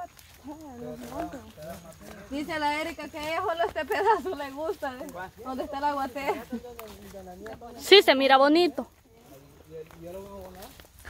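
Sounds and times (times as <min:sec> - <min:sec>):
quiet talking voices: 0:00.0 - 0:11.0.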